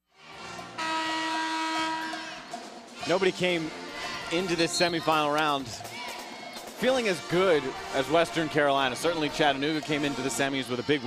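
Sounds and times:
brass band holding a chord: 0.5 - 5.4.

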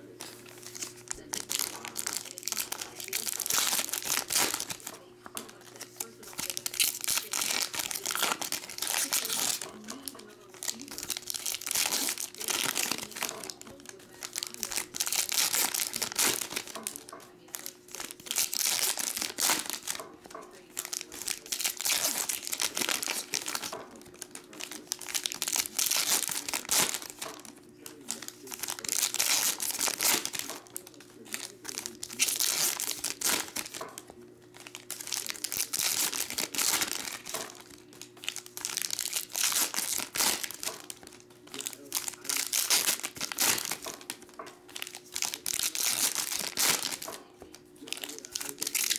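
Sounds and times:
foil packs tearing and crinkling: 0.0 - 48.9.

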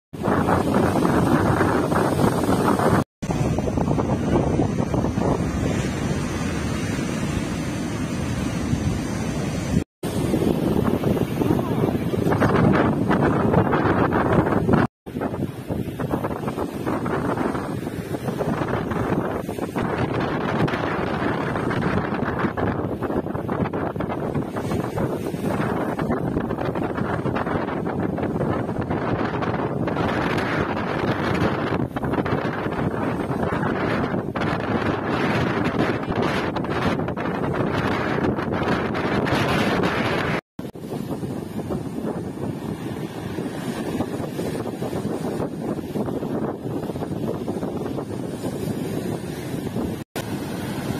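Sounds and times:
wind buffeting microphone: 0.1 - 50.9
surf washing onto rocks: 0.2 - 50.9
waves breaking against seawall: 0.2 - 50.9.

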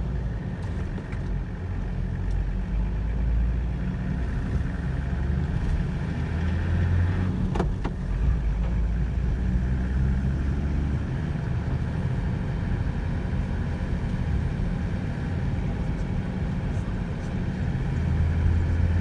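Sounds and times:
vehicle engine and tyres rumbling: 0.0 - 19.0.

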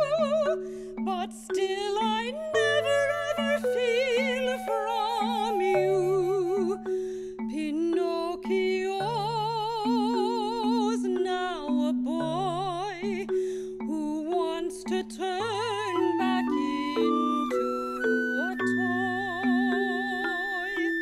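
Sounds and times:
marimba: 0.0 - 21.0
woman singing wordless notes: 0.0 - 21.0
flute: 2.4 - 6.8, 15.7 - 21.0.

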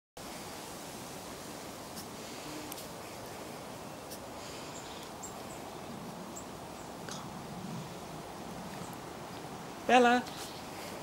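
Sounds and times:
steady outdoor hiss: 0.2 - 11.0.

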